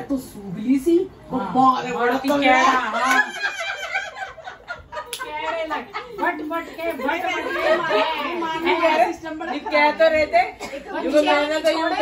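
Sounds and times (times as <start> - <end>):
women laughing: 2.7 - 10.2.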